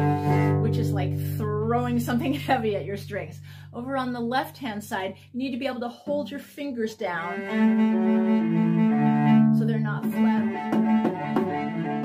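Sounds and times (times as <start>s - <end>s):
bowed cello: 0.0s - 4.3s, 6.0s - 12.0s.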